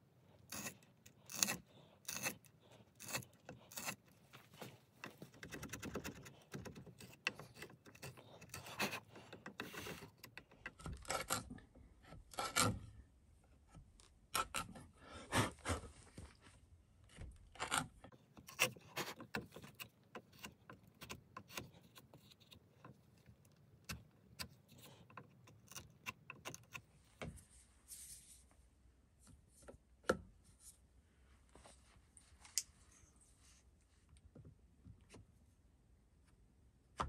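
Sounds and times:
hand tools scraping wood: 0.3s - 11.7s, 17.6s - 27.0s.

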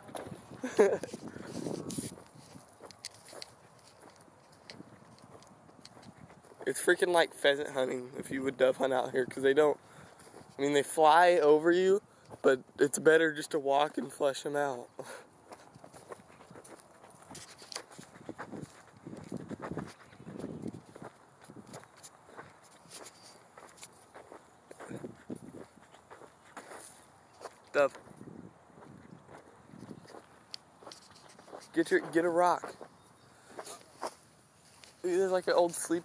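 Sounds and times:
footsteps through dry grass: 0.0s - 6.7s, 9.8s - 10.6s, 15.2s - 36.0s.

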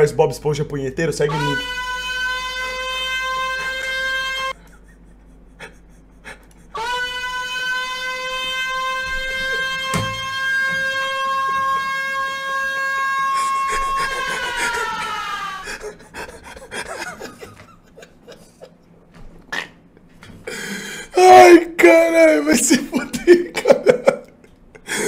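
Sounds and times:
loud steady siren tone: 1.4s - 4.6s, 6.8s - 15.6s.

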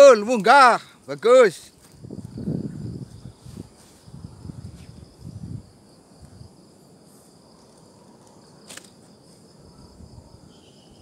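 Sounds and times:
wind rumbling on microphone: 1.6s - 8.7s, 9.4s - 11.0s
lower insect buzz: 1.7s - 11.0s
high-pitched insect chirring: 1.8s - 11.0s.

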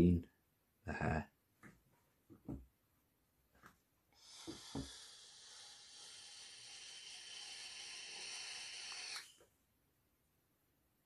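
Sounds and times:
steady hiss: 4.2s - 9.4s.

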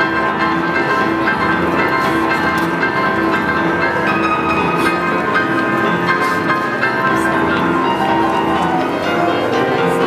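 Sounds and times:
boogie-woogie piano: 0.0s - 10.0s.

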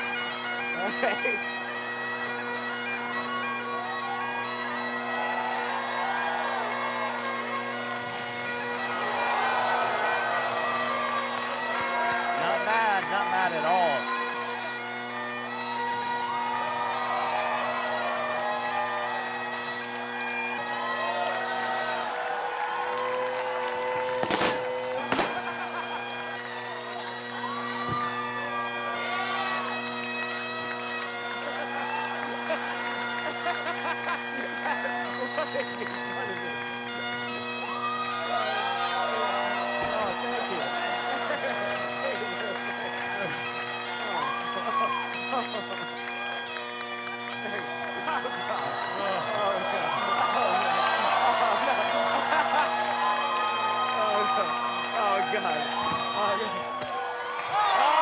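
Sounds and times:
bagpipes playing a tune: 0.0s - 58.0s.

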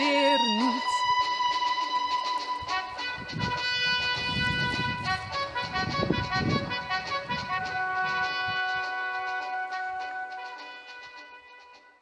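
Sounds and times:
instrumental backing track chords: 0.0s - 12.0s.

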